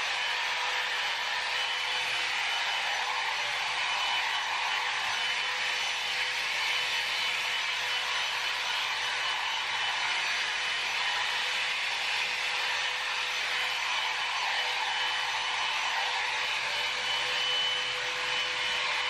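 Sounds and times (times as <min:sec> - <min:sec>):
hot air brush blowing: 0:00.0 - 0:19.0.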